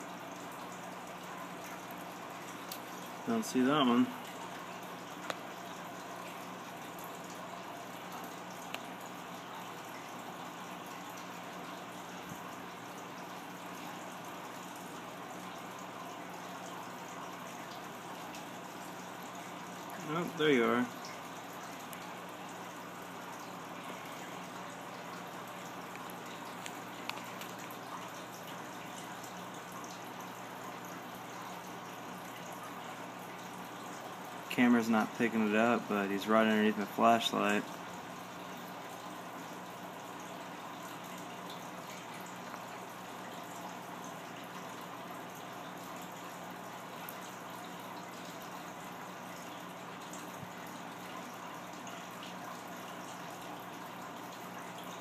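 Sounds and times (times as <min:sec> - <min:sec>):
low hum and hiss: 0:00.0 - 0:55.0.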